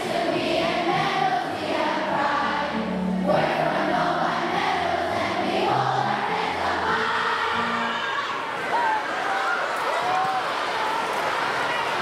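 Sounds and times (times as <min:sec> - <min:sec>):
recorded backing music: 0:00.0 - 0:08.6
children singing in unison: 0:00.0 - 0:08.7.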